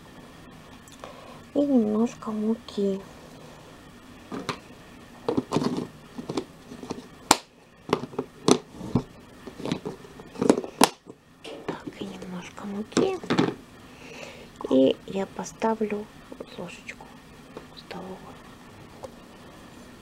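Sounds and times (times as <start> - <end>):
plastic tub being handled: 5.3 - 7.1.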